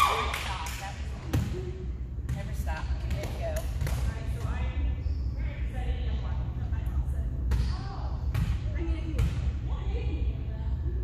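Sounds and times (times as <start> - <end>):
ball bouncing on wooden floor: 2.2 - 4.7.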